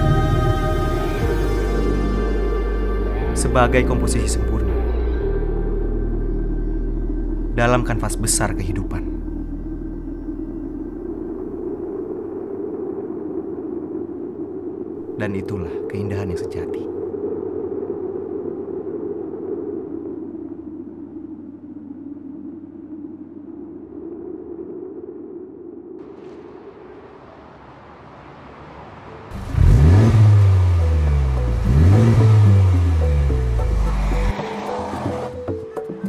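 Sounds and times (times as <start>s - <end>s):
held musical pad: 0.0s - 12.9s, 29.0s - 36.0s
car engine accelerating hard: 29.3s - 35.4s.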